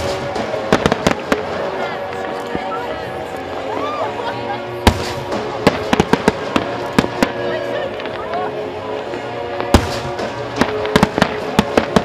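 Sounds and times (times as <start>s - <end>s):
fireworks bangs: 0.0s - 3.6s, 4.6s - 12.0s
music playing: 0.0s - 12.0s.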